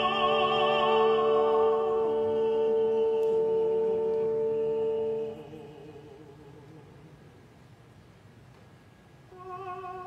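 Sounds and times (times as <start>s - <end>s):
accompaniment sustaining chord: 0.0s - 7.1s.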